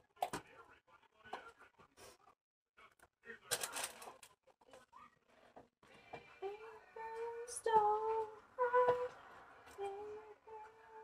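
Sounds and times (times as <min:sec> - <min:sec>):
person humming a tune: 0:09.8 - 0:11.0.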